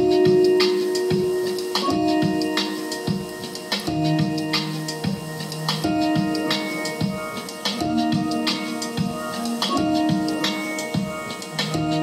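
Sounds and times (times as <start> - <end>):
steady electronic beat: 0.0 - 12.0
sustained synth chords: 0.0 - 12.0.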